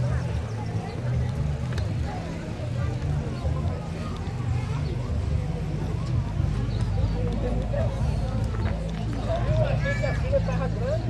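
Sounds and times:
footsteps ticking: 0:00.3 - 0:10.8.

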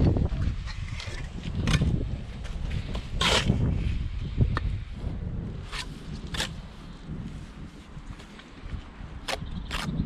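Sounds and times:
trowel scraping wet mortar: 0:03.1 - 0:03.7.

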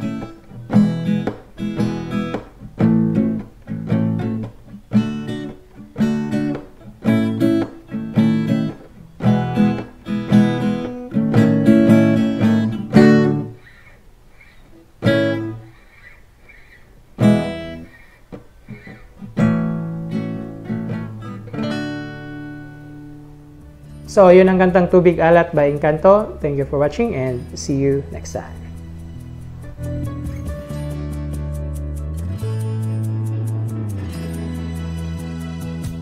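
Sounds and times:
acoustic guitar strumming: 0:00.0 - 0:36.0.

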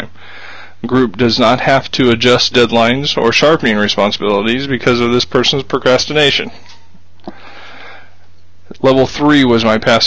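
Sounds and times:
man inhaling: 0:00.1 - 0:00.8, 0:07.2 - 0:08.3
man speaking: 0:00.8 - 0:06.7, 0:08.7 - 0:10.0.

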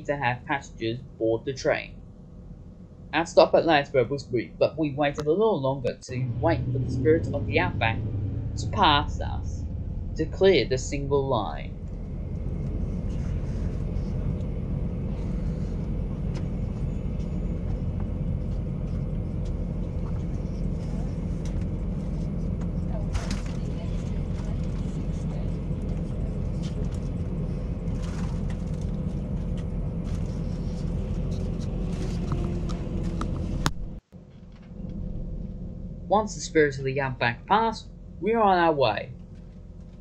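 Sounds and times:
passing train rumble: 0:04.9 - 0:34.0.

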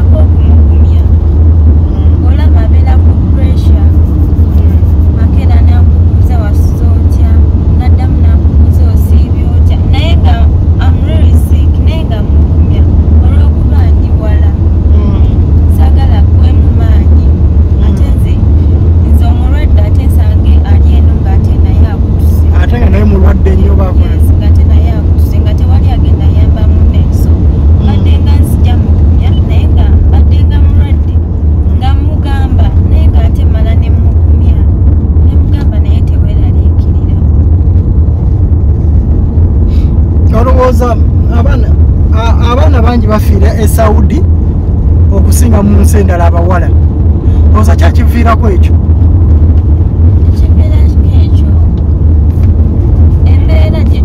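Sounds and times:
woman talking: 0:00.0 - 0:01.2, 0:01.9 - 0:22.6, 0:23.9 - 0:37.3, 0:50.2 - 0:51.7, 0:53.1 - 0:54.0
car road and engine rumble: 0:00.0 - 0:54.0.

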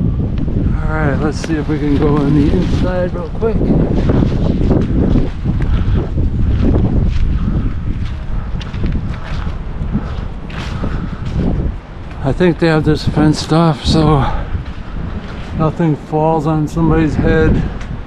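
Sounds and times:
wind buffeting microphone: 0:00.0 - 0:18.0
footsteps and scuffs: 0:07.0 - 0:12.2.

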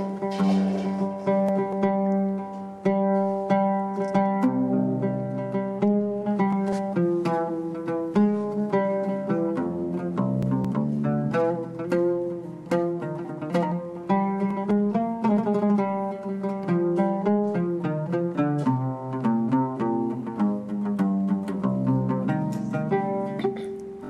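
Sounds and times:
oud played with plectrum: 0:00.0 - 0:24.0.

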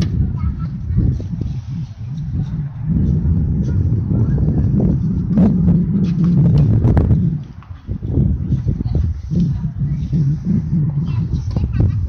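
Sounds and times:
loud low rumble: 0:00.0 - 0:12.0.

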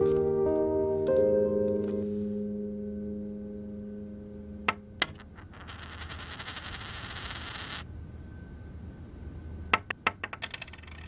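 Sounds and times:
held music chord: 0:00.0 - 0:05.0.

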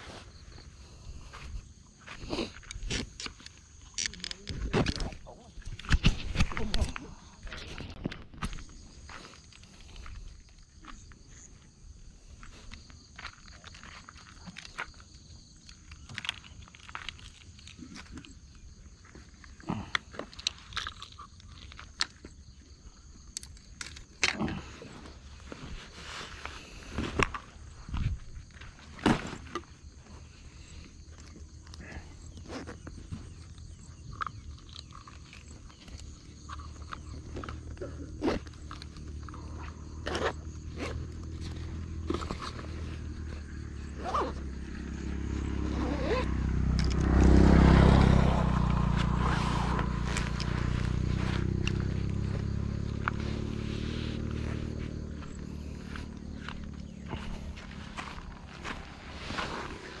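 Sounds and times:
gear and bags being packed: 0:23.5 - 0:44.8, 0:45.7 - 0:47.4, 0:48.8 - 1:00.0.

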